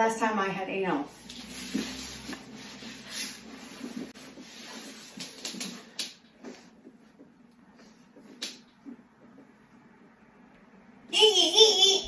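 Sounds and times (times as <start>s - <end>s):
rustling and shuffling: 1.1s - 9.9s.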